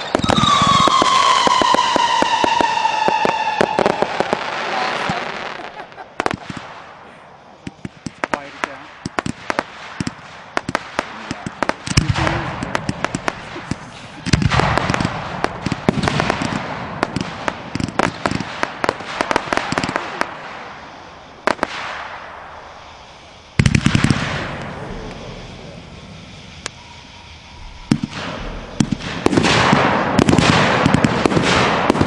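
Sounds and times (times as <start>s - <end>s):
fireworks popping and crackling: 0.0s - 26.8s, 27.6s - 32.0s.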